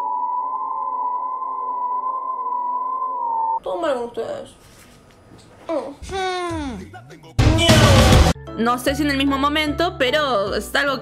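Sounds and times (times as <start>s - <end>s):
high electronic drone tone: 0.0s - 3.6s.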